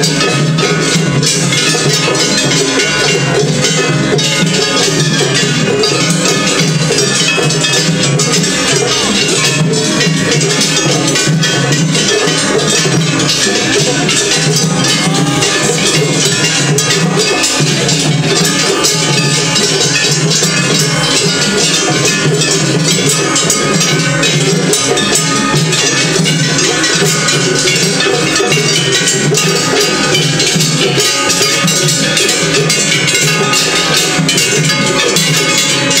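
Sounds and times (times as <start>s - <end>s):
hand gongs clanging: 0.0s - 36.0s
taiko drums: 0.0s - 36.0s.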